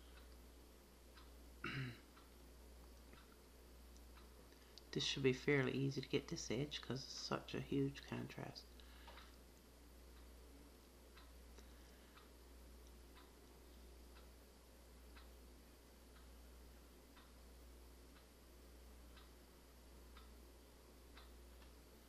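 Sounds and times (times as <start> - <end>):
clock ticking faintly: 0.0 - 22.0
low steady hum: 0.0 - 22.0.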